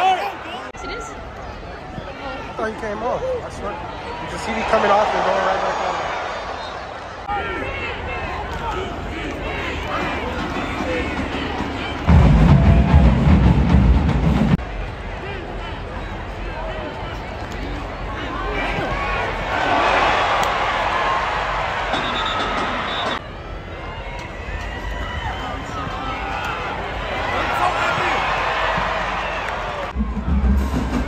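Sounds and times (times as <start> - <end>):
crowd shouting and cheering: 0.0 - 31.0.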